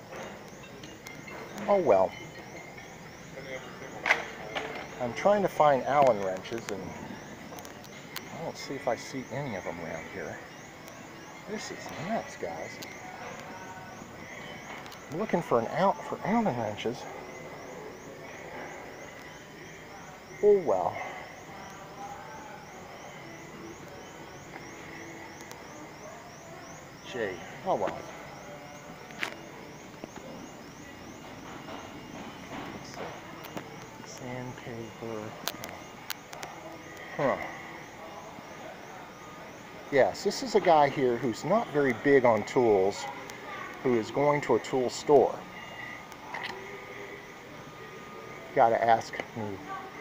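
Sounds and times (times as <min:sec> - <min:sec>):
faint distant voices: 0:00.0 - 0:50.0
steady background hum: 0:00.0 - 0:50.0.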